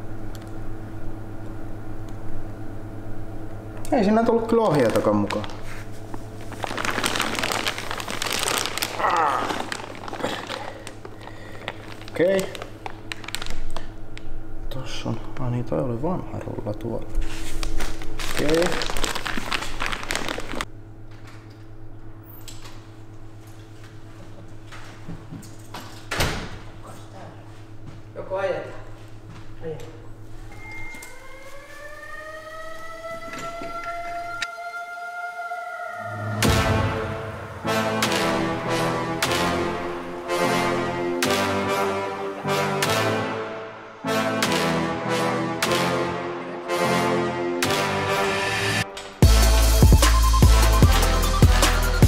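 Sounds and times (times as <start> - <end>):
plastic bag crinkling: 4.6 - 14.1, 17.4 - 20.7
siren-like wail rising in pitch: 30.5 - 39.2.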